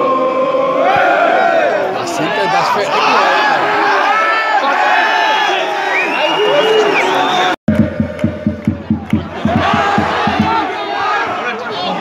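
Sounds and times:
football crowd chanting: 0.0s - 6.1s, 7.7s - 12.0s
crowd shouting: 0.0s - 8.0s, 8.8s - 12.0s
fast rhythmic drum beat: 7.7s - 10.7s.

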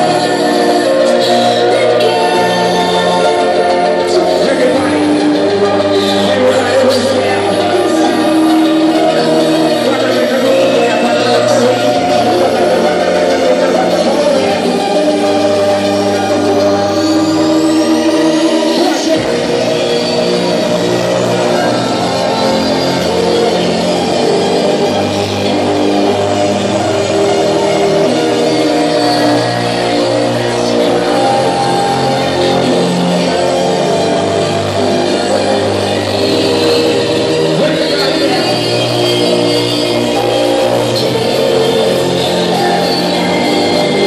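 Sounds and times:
loud hardstyle dance music: 0.0s - 44.0s.

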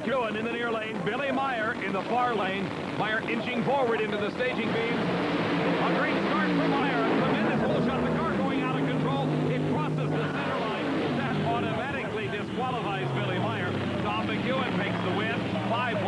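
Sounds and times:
drag racing car engines: 0.0s - 16.0s.

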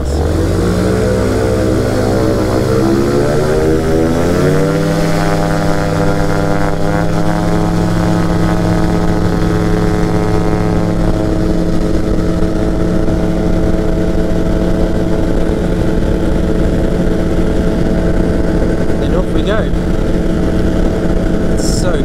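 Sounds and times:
microlight engine and propeller: 0.0s - 22.0s.

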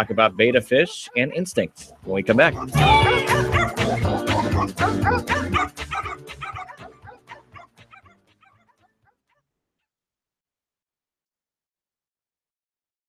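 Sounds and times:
music jingle: 2.0s - 7.3s
dogs barking and yipping: 2.6s - 8.9s.

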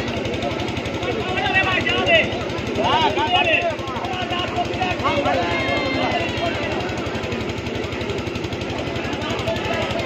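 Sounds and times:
murmur of crowd: 0.0s - 10.0s
small engine running: 0.0s - 10.0s.

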